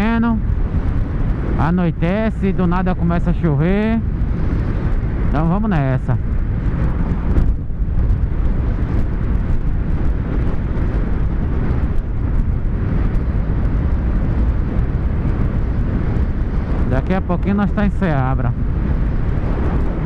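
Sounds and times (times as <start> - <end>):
motorcycle engine running: 0.0 - 20.0
wind over microphone: 0.0 - 20.0.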